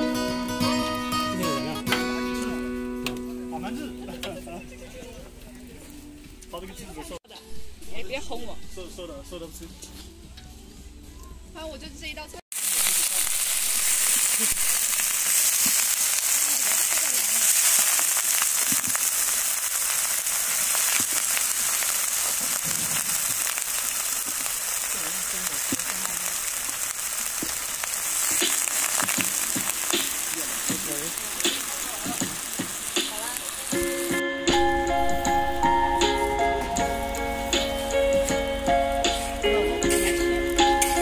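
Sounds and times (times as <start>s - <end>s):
music: 0.0s - 12.4s, 28.3s - 41.0s
chicken sizzling in hot oil: 12.5s - 41.0s.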